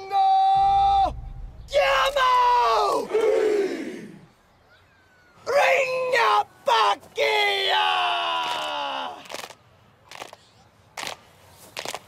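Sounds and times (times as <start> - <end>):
men shouting together: 1.7 - 4.2.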